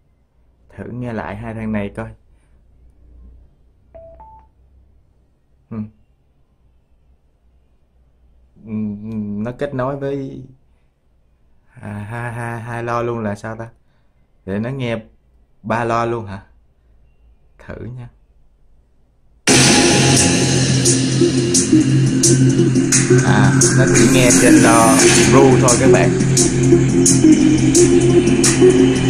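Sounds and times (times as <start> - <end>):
electronic prompt beeps: 4.0 - 4.5
song with guitar over speakers: 19.5 - 29.0.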